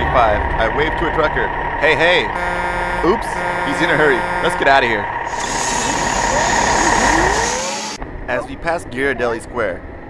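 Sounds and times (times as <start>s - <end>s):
truck engine running: 0.0s - 8.2s
street traffic noise: 0.0s - 10.0s.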